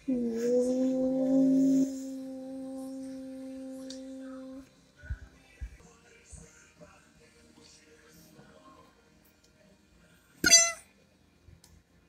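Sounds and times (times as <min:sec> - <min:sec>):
steady hum: 0:00.0 - 0:05.8.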